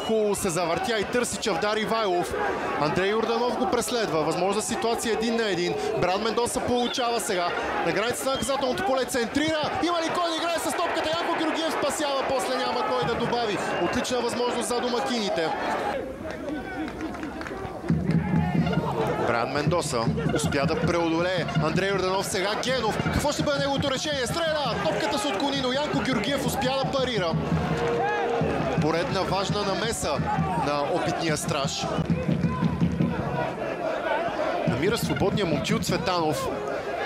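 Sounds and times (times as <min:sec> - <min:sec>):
people shouting: 0:00.0 - 0:16.0, 0:17.7 - 0:19.4, 0:20.1 - 0:37.0
light crowd noise: 0:00.0 - 0:37.0
murmur of voices: 0:00.0 - 0:37.0.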